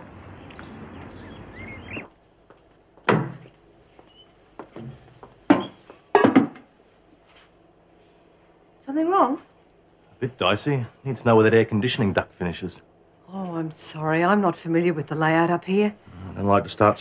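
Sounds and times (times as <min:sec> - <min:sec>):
steady outdoor hiss: 0:00.0 - 0:17.0
thuds and knocks of equipment: 0:03.0 - 0:03.5.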